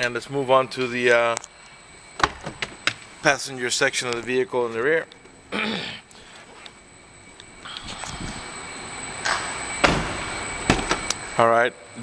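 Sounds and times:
car door heavy clunk: 9.8 - 11.1.

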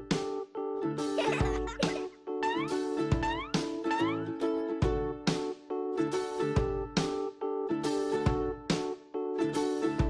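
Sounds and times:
children's music on plucked strings: 0.0 - 10.0
squeaky rising glides: 2.4 - 4.3.

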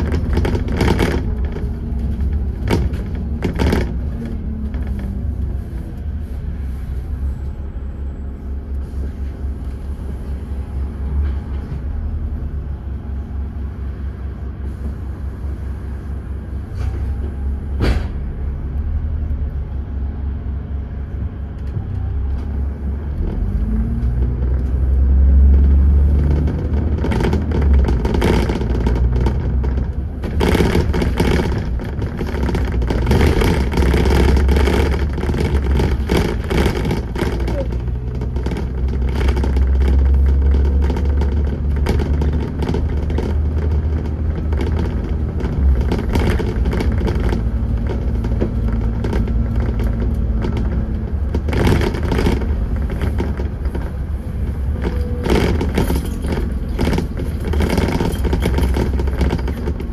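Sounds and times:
knocks and rattles: 0.0 - 6.3, 16.7 - 18.6, 21.1 - 59.9
bus engine rumbling: 0.0 - 59.9.

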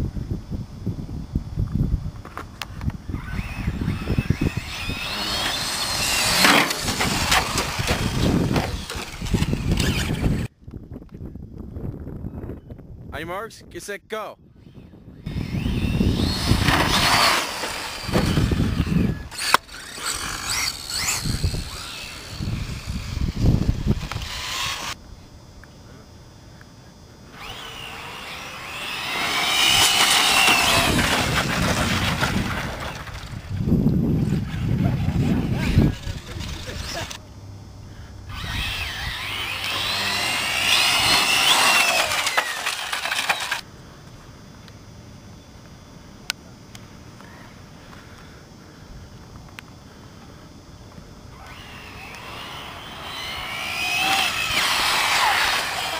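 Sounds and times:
rc car motors whining: 2.3 - 10.5, 14.6 - 25.0, 27.3 - 37.2, 38.0 - 43.7, 51.3 - 55.9.

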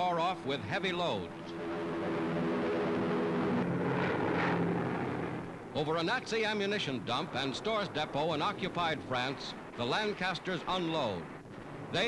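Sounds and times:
propeller engines roaring: 0.0 - 12.0
rushing noise: 1.6 - 12.0.

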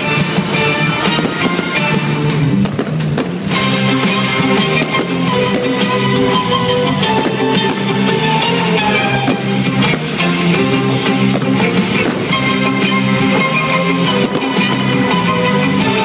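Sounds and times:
loud rock music: 0.0 - 16.0.

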